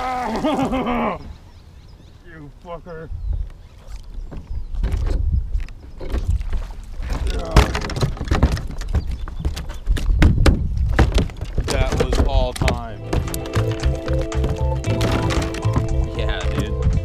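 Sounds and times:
wind rumble on microphone: 0:02.9 - 0:17.0.

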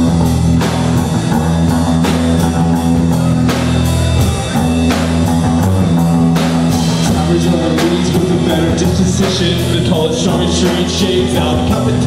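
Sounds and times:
bass guitar: 0:00.0 - 0:12.0
drum kit: 0:00.0 - 0:12.0
electric guitar: 0:00.0 - 0:12.0.

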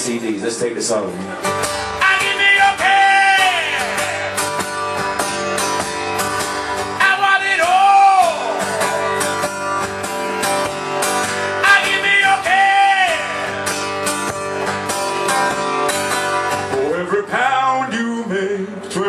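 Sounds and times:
acoustic guitar strummed: 0:00.0 - 0:19.0
man singing: 0:01.9 - 0:04.6, 0:06.9 - 0:09.3, 0:11.5 - 0:13.6, 0:16.7 - 0:19.0.

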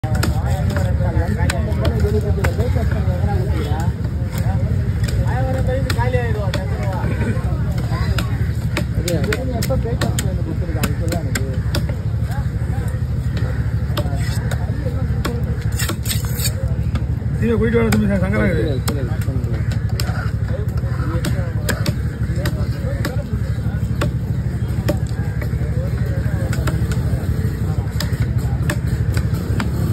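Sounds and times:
low engine rumble: 0:00.0 - 0:29.9
many people talking: 0:00.0 - 0:29.9
cleaver chopping onto wooden block: 0:00.1 - 0:02.6, 0:07.7 - 0:12.1, 0:15.2 - 0:17.1, 0:21.2 - 0:24.2, 0:24.8 - 0:25.5, 0:27.9 - 0:29.9
knife chopping on wooden block: 0:15.2 - 0:17.1, 0:21.2 - 0:23.3.

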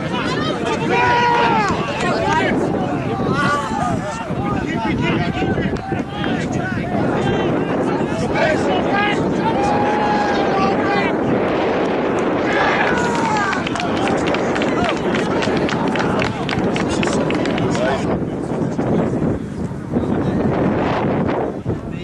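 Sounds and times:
wind on microphone: 0:00.0 - 0:22.0
rapid patter of small clicks: 0:13.2 - 0:18.0.

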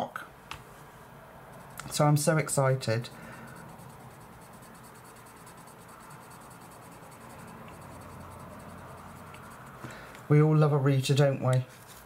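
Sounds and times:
pencil scribbling on paper: 0:03.1 - 0:09.8.

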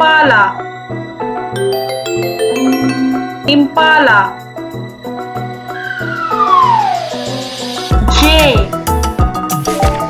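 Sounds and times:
light children's music: 0:00.0 - 0:10.0
cartoon whistle sliding down: 0:05.8 - 0:07.4.

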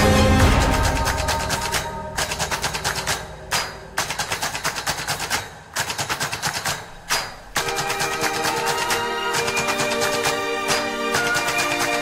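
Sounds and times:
sustained notes: 0:00.0 - 0:04.5
rapid drum hits: 0:00.0 - 0:10.3.

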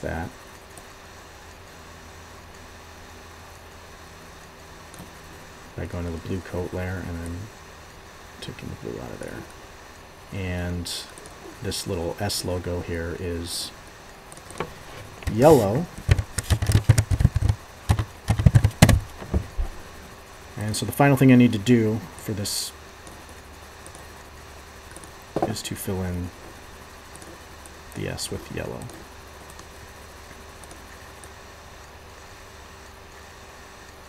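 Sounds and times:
low electrical hum with hiss: 0:00.0 - 0:34.0
keyboard keys clicking: 0:16.0 - 0:19.6.

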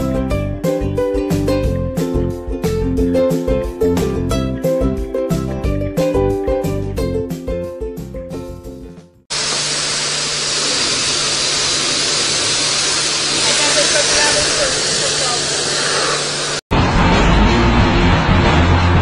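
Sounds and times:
music: 0:00.0 - 0:09.3, 0:16.8 - 0:19.0
pressure washer spraying water: 0:09.3 - 0:16.6
loud rumbling noise: 0:09.3 - 0:19.0.

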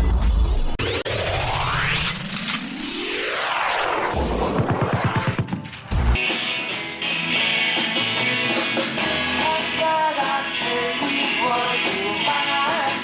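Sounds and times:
accelerating electronic pulses: 0:00.7 - 0:06.2.

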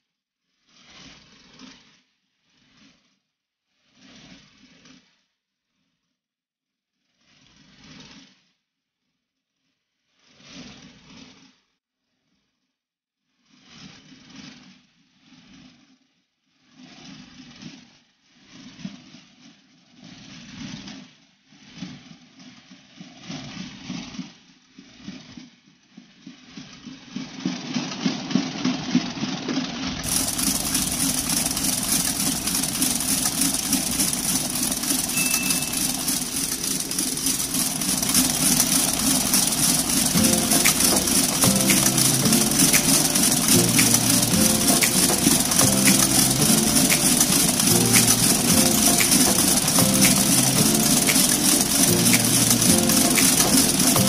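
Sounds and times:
background music with steady beat: 0:30.0 - 0:54.0
electric mixer motor running: 0:30.0 - 0:54.0.

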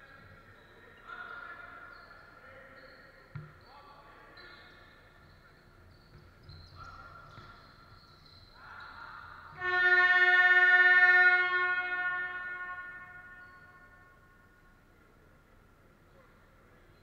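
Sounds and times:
scoreboard horn buzzing: 0:09.5 - 0:14.3.

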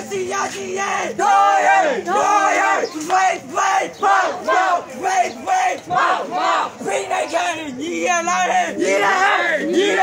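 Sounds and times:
crowd chanting slogan: 0:00.0 - 0:10.0.

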